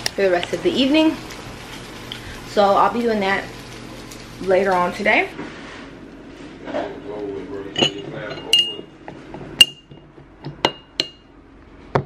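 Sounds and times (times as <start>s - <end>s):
glass clinks: 7.7s - 8.9s.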